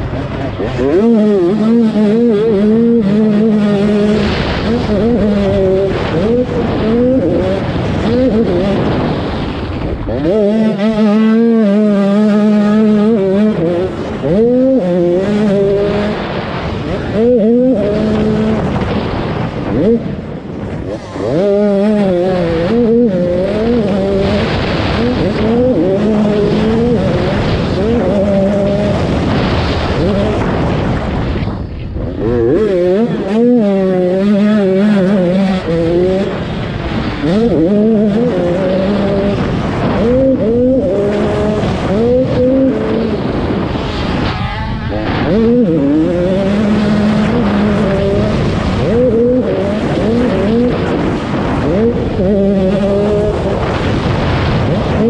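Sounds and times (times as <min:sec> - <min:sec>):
motocross bike engine revving: 0:00.0 - 0:55.0.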